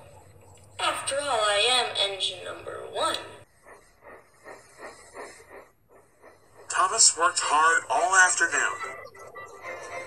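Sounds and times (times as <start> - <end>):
steam locomotive chuffing: 0.0 - 10.0.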